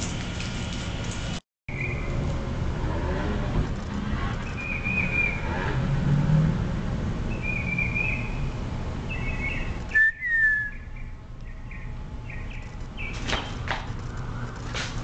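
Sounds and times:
birds chirping: 0:04.4 - 0:05.6, 0:07.3 - 0:14.7
falling bird whistle: 0:09.2 - 0:10.9.

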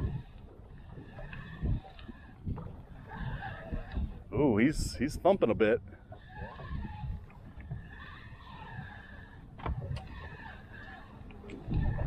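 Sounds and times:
fishing reel whirring: 0:00.0 - 0:04.3, 0:06.1 - 0:12.0
wind and water noise: 0:00.0 - 0:12.0.

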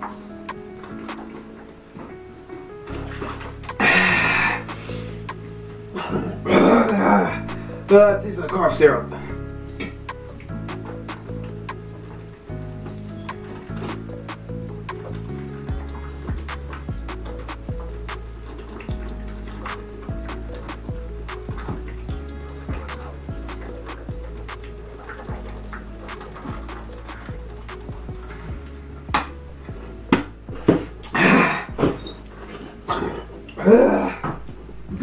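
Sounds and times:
background music with steady beat: 0:00.0 - 0:35.0.

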